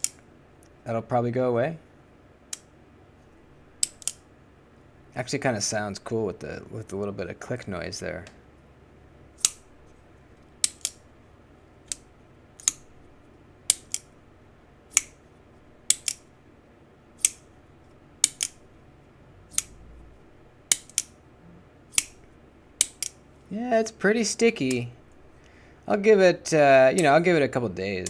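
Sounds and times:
folding knife clicking open and shut: 3.8 - 4.2, 9.4 - 9.6, 10.6 - 11.0, 12.6 - 12.9, 13.7 - 14.1, 14.9 - 15.2, 15.9 - 16.2, 17.2 - 17.4, 18.2 - 18.6, 19.5 - 19.8, 20.7 - 21.2, 21.9 - 22.2, 22.8 - 23.2.

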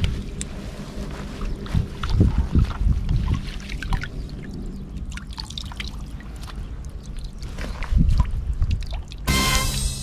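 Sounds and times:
water sloshing and swishing: 0.0 - 9.3.

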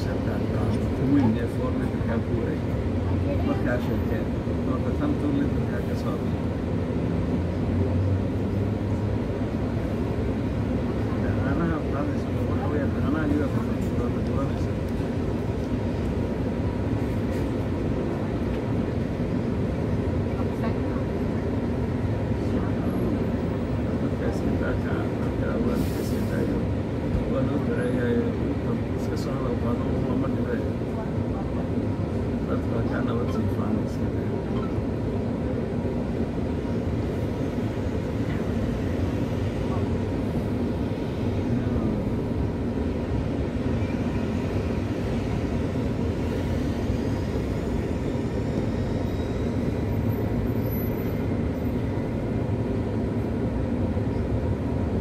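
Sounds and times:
bus engine hum: 0.0 - 55.0
passengers talking quietly: 0.0 - 55.0.

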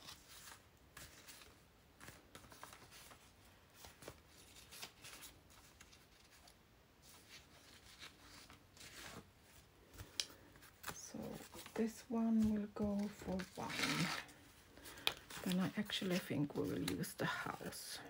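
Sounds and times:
paper pages rustling: 0.0 - 18.0.

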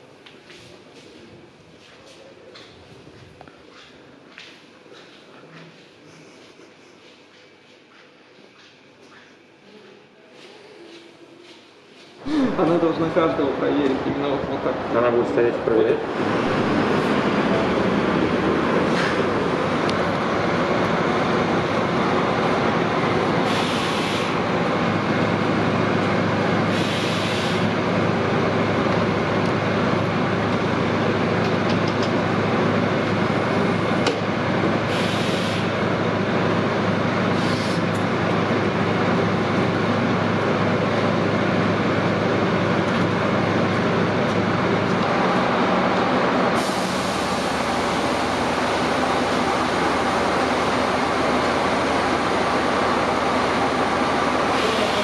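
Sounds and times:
bus engine idling: 12.2 - 55.0
air hiss bursts: 23.4 - 24.4, 26.7 - 27.7, 34.9 - 35.7, 37.4 - 37.9, 46.6 - 47.6.

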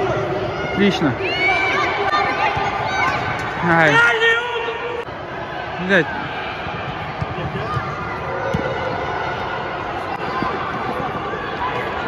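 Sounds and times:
ball being kicked: 6.8 - 8.8.

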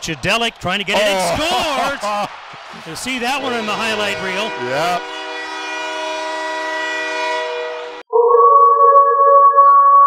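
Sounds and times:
arena goal horn: 3.1 - 8.1.

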